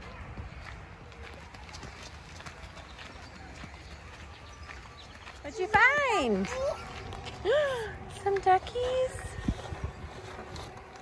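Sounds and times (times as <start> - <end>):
footsteps on gravel: 0.0 - 11.0
wind rumble on microphone: 6.8 - 11.0.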